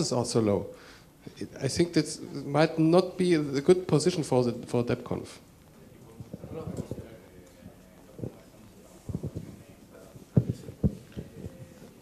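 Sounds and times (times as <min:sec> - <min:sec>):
faint room noise: 0:00.0 - 0:12.0
microphone handling thumps: 0:09.0 - 0:11.8.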